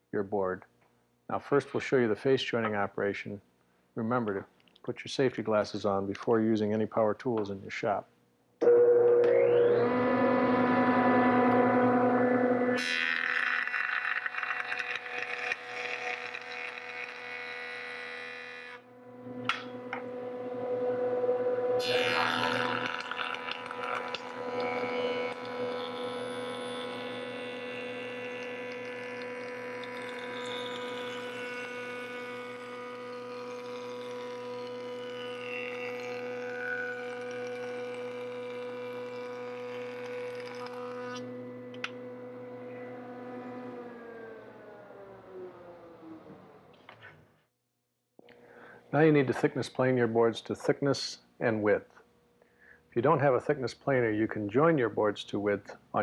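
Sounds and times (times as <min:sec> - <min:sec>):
jointer motor humming: 0:08.6 - 0:47.0
board being cut on jointer: 0:08.7 - 0:46.8.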